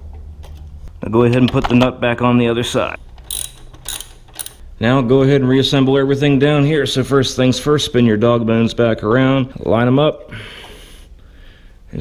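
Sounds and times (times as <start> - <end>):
socket ratchet clicking: 3.1 - 4.6.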